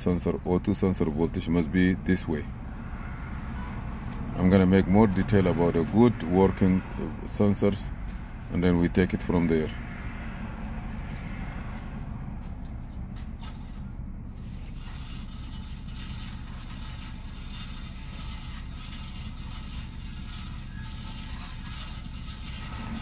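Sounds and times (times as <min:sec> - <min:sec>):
car engine idling: 0:00.0 - 0:23.0.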